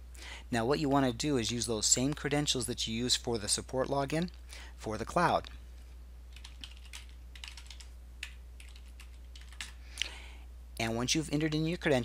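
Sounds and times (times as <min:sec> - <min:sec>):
faint low hum: 0:00.0 - 0:12.0
keyboard typing: 0:06.3 - 0:09.8.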